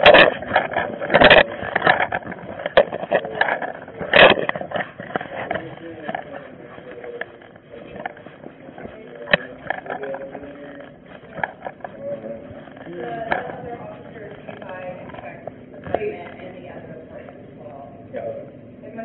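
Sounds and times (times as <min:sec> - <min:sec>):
knocks and rubbing on microphone: 0:00.0 - 0:17.5
faint indistinct voices: 0:00.0 - 0:19.0.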